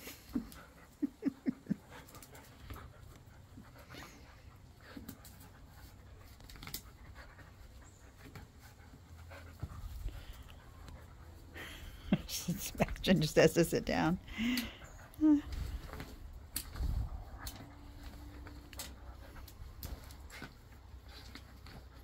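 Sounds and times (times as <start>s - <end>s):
dogs panting: 0.0s - 22.0s.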